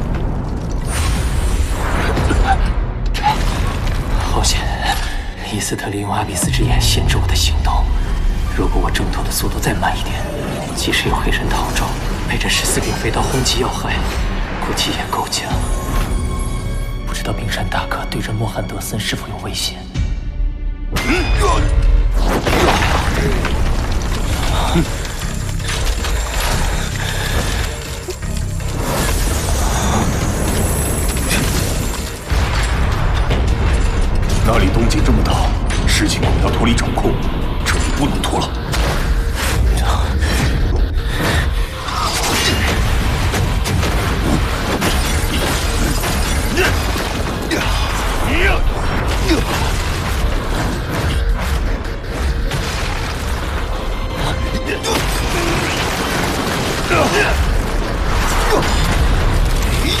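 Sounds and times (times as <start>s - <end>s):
man speaking: 4.3s - 14.0s
mechanical clanking and whirring: 22.3s - 60.0s.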